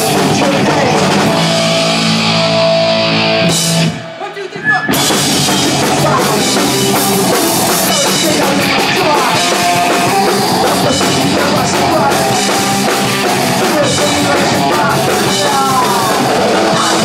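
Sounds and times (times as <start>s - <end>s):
hardcore punk band playing: 0.0s - 17.0s.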